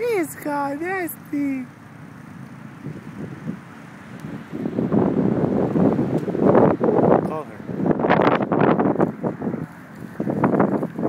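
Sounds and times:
wind buffeting microphone: 0:02.7 - 0:11.0.

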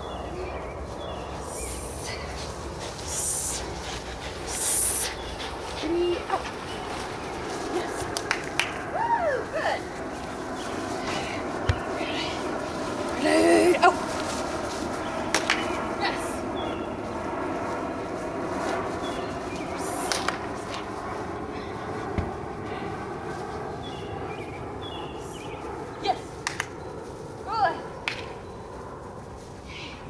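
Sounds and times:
rising and falling call: 0:00.0 - 0:12.4.

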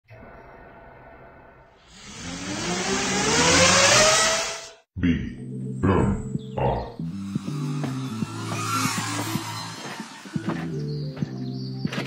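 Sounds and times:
motor whine rising in pitch: 0:01.9 - 0:04.8, 0:07.0 - 0:11.8
propeller rushing noise: 0:07.0 - 0:11.8.

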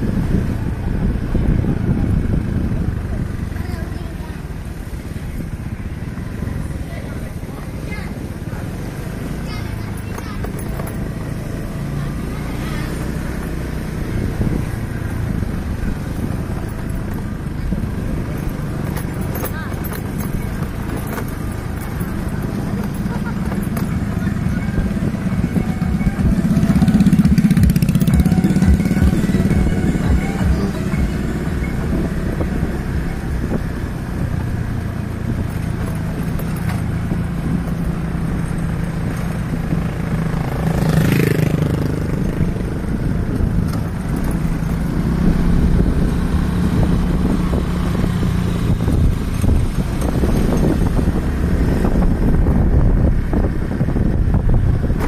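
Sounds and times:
motorcycle passing by: 0:00.0 - 0:55.0
road and wind noise: 0:00.0 - 0:55.0
small motorcycle engine running: 0:00.1 - 0:55.0.

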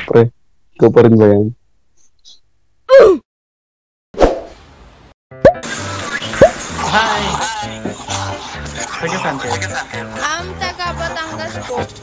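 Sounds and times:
background music: 0:05.3 - 0:12.0
cartoon plop with falling pitch: 0:05.4 - 0:05.7.

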